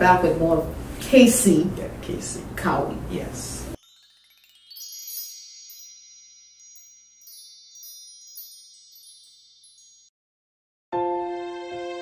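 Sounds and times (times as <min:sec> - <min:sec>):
high tinkling chimes: 0:03.8 - 0:10.1.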